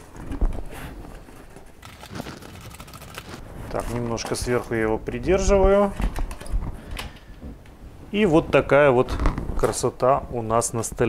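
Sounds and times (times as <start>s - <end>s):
cardboard packaging rustling: 0.0s - 4.2s.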